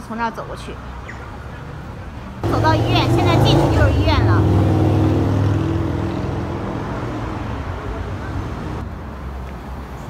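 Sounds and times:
vehicle engine passing: 2.4 - 8.8.

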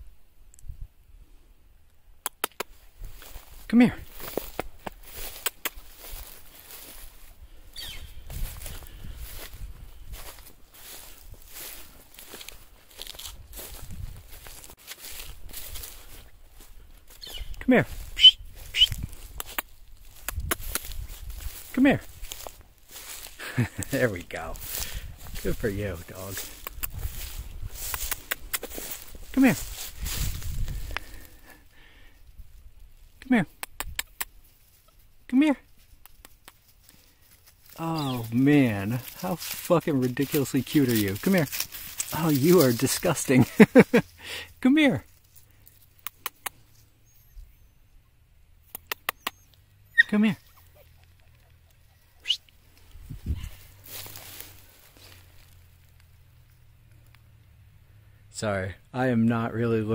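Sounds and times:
sharp clicks: 2.2 - 2.8, 5.4 - 5.9, 26.5 - 27.0, 27.9 - 28.7, 33.5 - 34.4, 46.0 - 46.6, 48.6 - 49.4
footsteps through grass and weeds: 2.7 - 33.2, 34.3 - 46.0, 50.5 - 57.2
microphone handling rumble: 8.0 - 11.6, 24.5 - 31.0.

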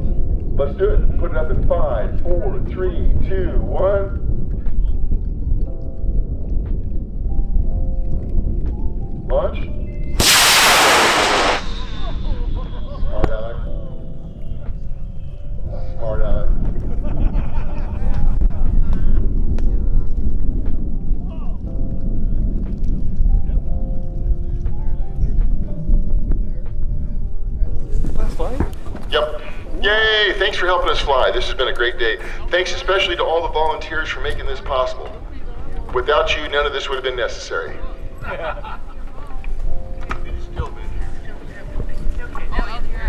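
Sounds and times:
low rumble of wind: 0.0 - 43.0
rocket motor roar: 10.2 - 12.5.

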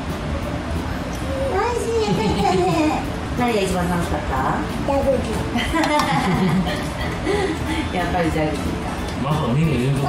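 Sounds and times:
toddler talking: 4.8 - 5.6.

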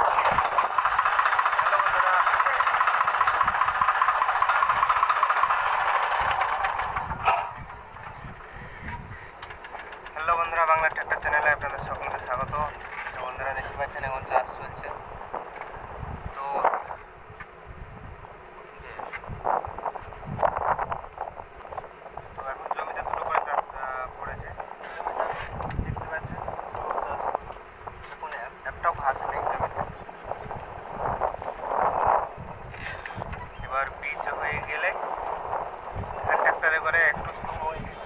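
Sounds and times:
wind buffeting microphone: 0.0 - 38.0
man talking: 1.5 - 2.8, 10.1 - 15.0, 16.4 - 16.9, 18.7 - 19.2, 22.4 - 27.4, 28.1 - 29.9, 33.1 - 35.0, 36.2 - 38.0.

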